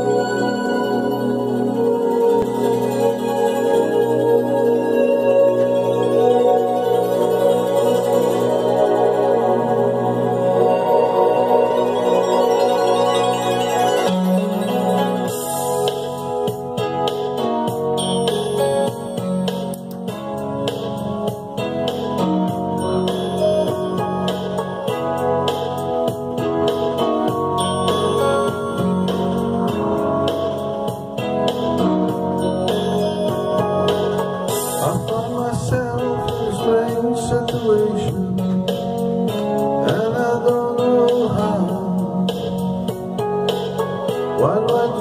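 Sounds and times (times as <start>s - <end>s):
guitar instrumental music: 0.0s - 45.0s.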